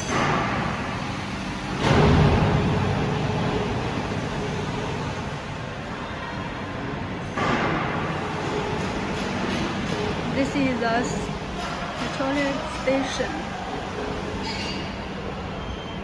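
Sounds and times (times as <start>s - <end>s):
rumbling factory machinery: 0.0s - 16.0s.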